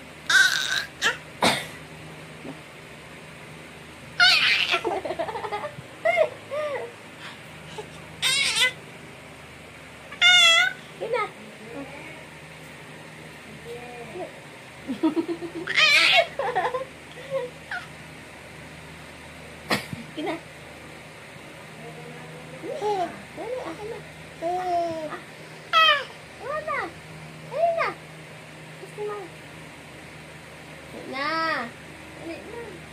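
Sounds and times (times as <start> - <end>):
baby squealing: 0.3 - 1.2, 4.2 - 4.9, 8.2 - 8.8, 10.2 - 10.8, 15.6 - 16.3.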